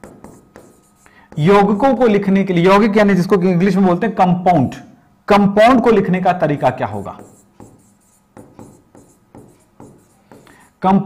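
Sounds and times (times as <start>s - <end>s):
writing on a board: 0.0s - 2.0s, 7.0s - 10.8s.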